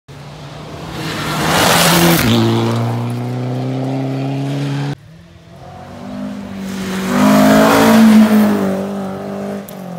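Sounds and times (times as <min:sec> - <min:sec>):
rally car engine: 0:00.1 - 0:09.9.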